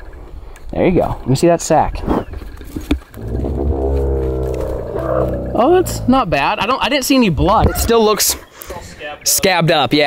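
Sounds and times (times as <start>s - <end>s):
camel groaning: 3.2s - 6.4s.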